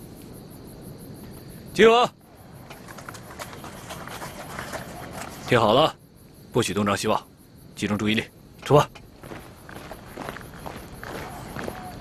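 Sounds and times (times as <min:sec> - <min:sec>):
gear rustling: 0:02.6 - 0:05.6
footsteps on dirt path: 0:08.7 - 0:12.0.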